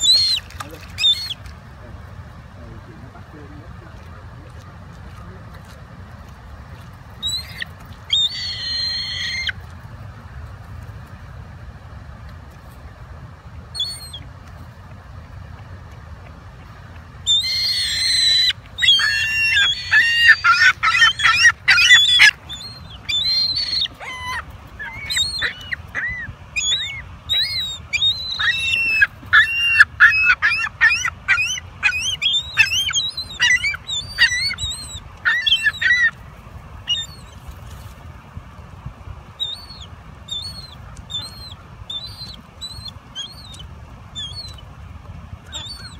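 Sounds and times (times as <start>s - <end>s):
gulls calling: 0.0s - 1.5s, 7.2s - 9.6s, 13.7s - 14.3s, 17.2s - 37.6s, 39.3s - 45.9s.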